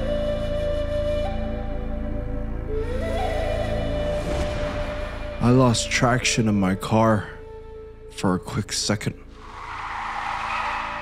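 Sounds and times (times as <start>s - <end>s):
car tyres skidding: 9.3s - 11.0s.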